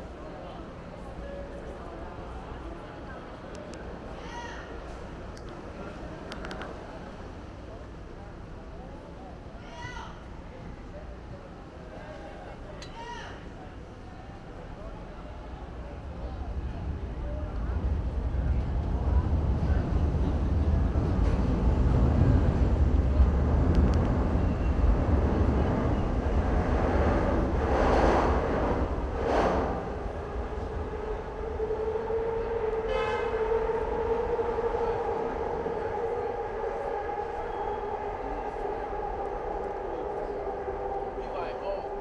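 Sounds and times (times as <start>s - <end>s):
elevated subway train rumbling: 0.0s - 42.0s
train high whine: 14.9s - 42.0s.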